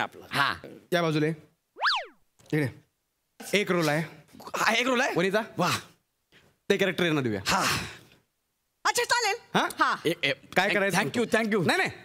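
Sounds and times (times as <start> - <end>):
swooping whistle-like tone: 1.8 - 2.2.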